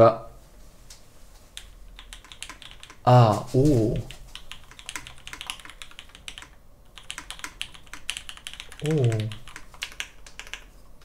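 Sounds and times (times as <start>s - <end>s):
fast mechanical keyboard typing: 1.6s - 3.1s, 4.0s - 10.8s.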